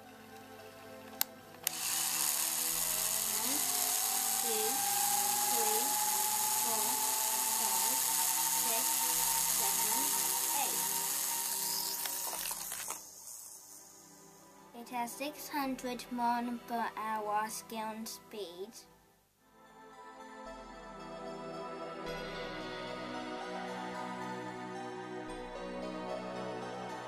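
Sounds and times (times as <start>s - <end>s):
toy launcher clicks: 1.1s - 13.9s
high electric whirr: 1.6s - 14.5s
background music with singing: 19.5s - 27.0s.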